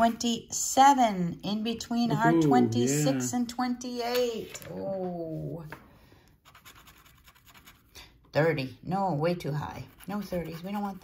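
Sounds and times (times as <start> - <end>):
scratcher tool scratching ticket: 6.4 - 8.0, 9.7 - 11.0.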